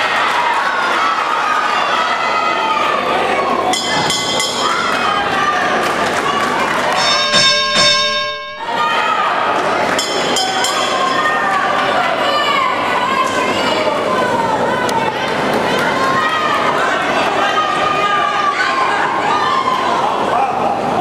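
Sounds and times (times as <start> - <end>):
crowd shouting: 0.0 - 21.0.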